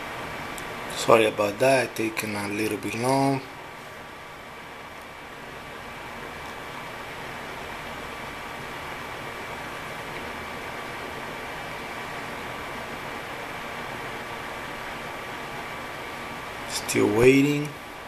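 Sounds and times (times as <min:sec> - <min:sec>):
steady background hiss: 0:00.0 - 0:18.0.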